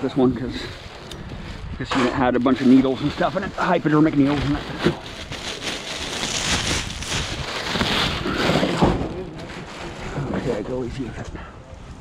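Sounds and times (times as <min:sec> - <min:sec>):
plastic bag rustling: 0:00.2 - 0:10.8.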